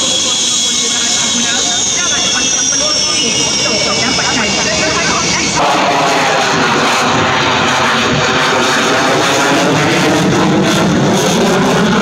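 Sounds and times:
jet engine turbine whine: 0.0s - 12.0s
background voices: 0.9s - 10.7s.

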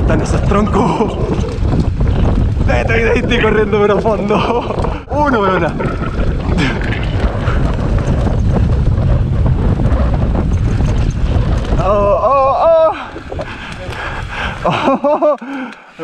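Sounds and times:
tyres rumbling on dirt: 0.0s - 15.3s
bike rattle: 0.0s - 16.0s
wind buffeting microphone: 0.0s - 16.0s.

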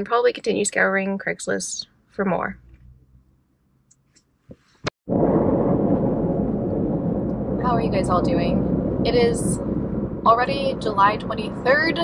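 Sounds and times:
road and wind noise in car: 2.6s - 3.4s, 5.1s - 12.0s.

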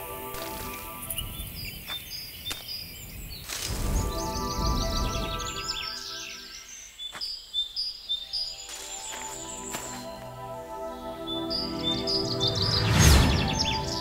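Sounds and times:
soft music pad: 0.0s - 1.7s, 3.7s - 6.9s, 8.2s - 14.0s
songbirds chirping: 0.0s - 14.0s
low whoosh: 12.5s - 14.0s.

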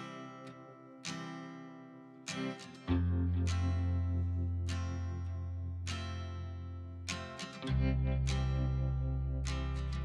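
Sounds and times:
plucked guitar chords: 0.0s - 10.0s.

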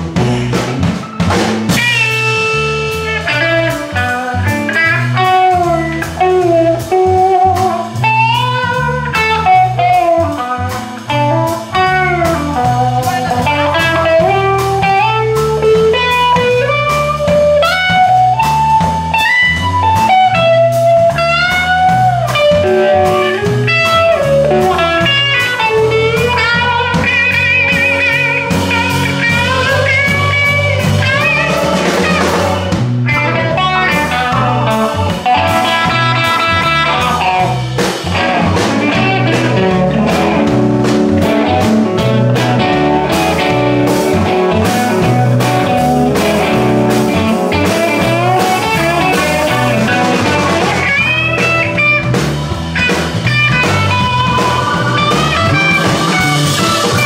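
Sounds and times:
electric guitar solo: 0.0s - 57.0s
slow blues band: 0.0s - 57.0s.

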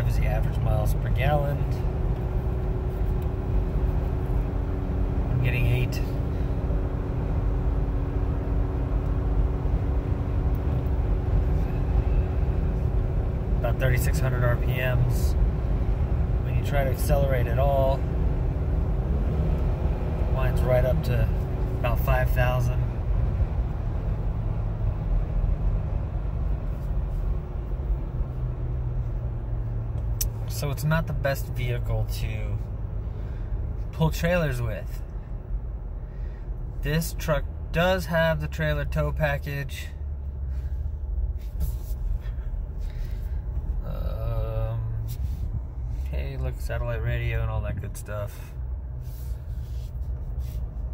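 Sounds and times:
engine humming under load: 0.0s - 50.9s
road and wind noise: 0.0s - 50.9s.

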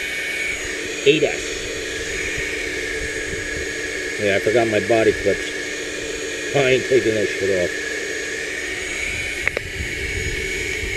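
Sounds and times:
steady machine whine: 0.0s - 10.9s.

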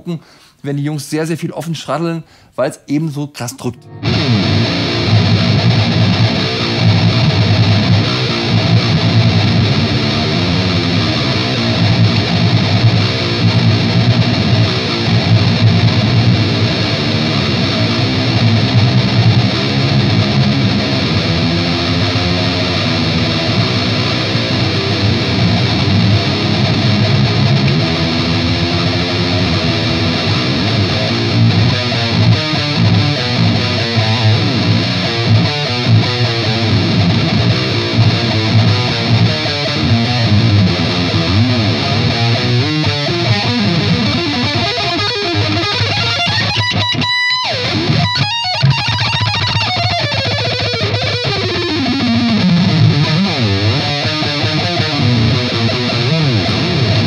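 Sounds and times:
distorted electric guitar riffing: 3.6s - 57.0s.

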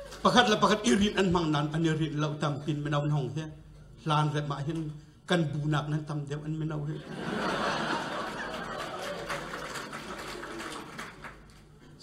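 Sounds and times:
crowd laughing: 7.0s - 11.2s.

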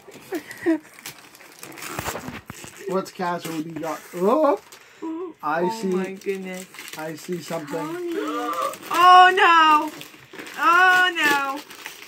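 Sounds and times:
wrapping paper crinkling and tearing: 0.0s - 12.0s.

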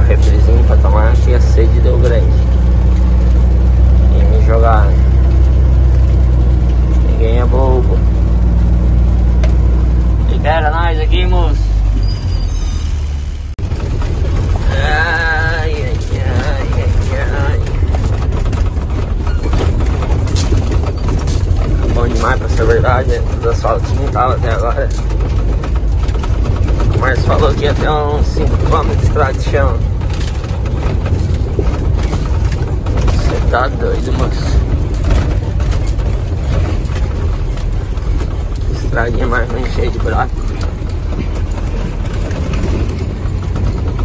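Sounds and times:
rough rattling rumble: 0.0s - 44.0s
truck engine drone: 0.0s - 44.0s.

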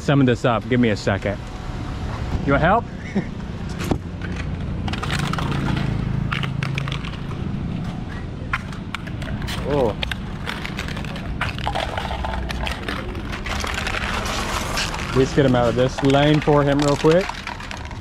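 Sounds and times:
low traffic hum: 0.0s - 18.0s
aluminium cans clinking: 8.5s - 18.0s.

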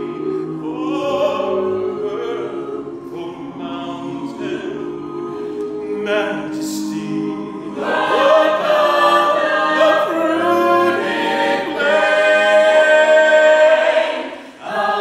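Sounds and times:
a cappella ensemble singing: 0.0s - 15.0s.

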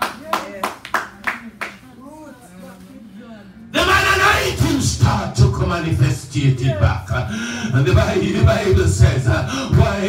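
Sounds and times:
hand claps: 0.0s - 1.8s.

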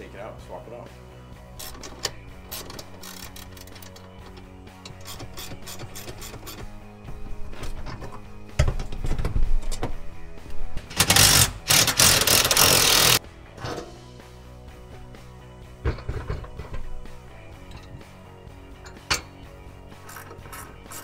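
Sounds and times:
background music: 0.0s - 21.0s
cordless drill running: 11.2s - 13.2s.

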